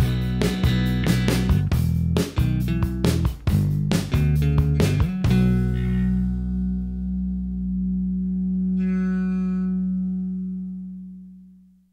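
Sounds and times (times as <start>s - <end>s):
electric guitar and bass chord ringing: 0.0s - 11.9s.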